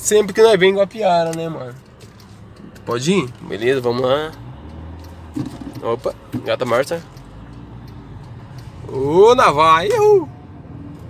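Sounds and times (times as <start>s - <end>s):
car engine and tyres hum: 0.0s - 11.0s
man talking: 8.8s - 10.3s.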